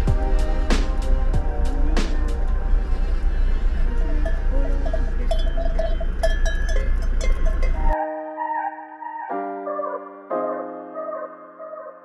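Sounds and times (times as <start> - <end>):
steady low rumble: 0.0 - 8.0
cowbells clanking: 3.8 - 8.0.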